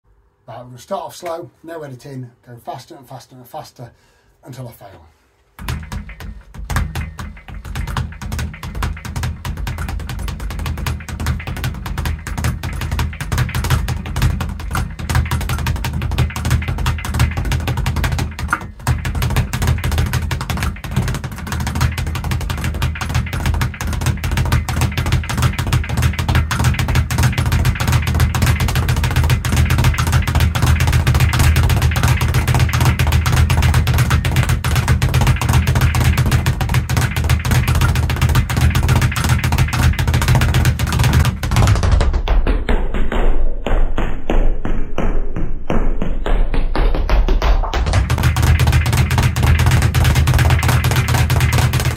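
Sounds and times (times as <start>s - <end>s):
speed bag rattling: 5.6s - 42.3s, 47.3s - 51.9s.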